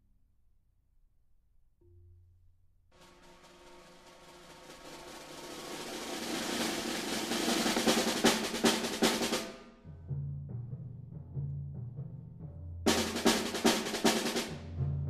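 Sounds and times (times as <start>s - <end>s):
sharp accented drum strikes: 3.0s - 9.9s
drum roll: 3.0s - 15.0s.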